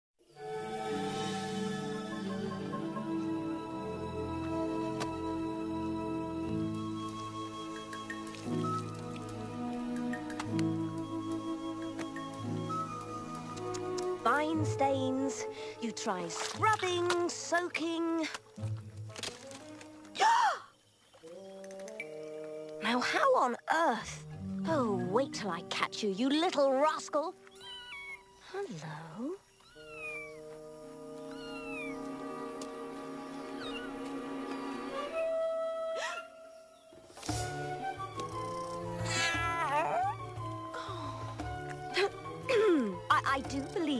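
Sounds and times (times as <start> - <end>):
soft background music: 0.2 - 20.2, 21.4 - 35.4, 37.1 - 43.9
soft orchestral chords: 0.4 - 16.5
water dripping from wrung cloth: 6.6 - 14.3, 16.0 - 22.0
leopard cub mewing: 27.5 - 28.3, 29.6 - 30.4, 31.2 - 32.0, 38.5 - 40.2.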